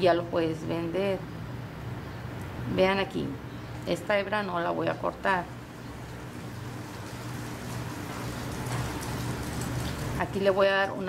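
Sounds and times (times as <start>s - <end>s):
steady hiss: 5.4s - 10.5s.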